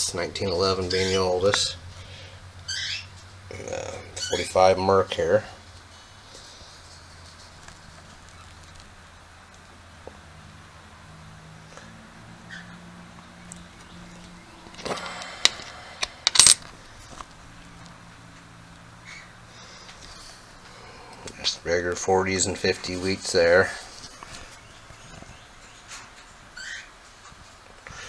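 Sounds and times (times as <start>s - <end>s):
faint steady hum: 0.0s - 28.0s
small sharp coin clicks: 16.2s - 16.6s
coin scraping on table: 16.3s - 16.6s.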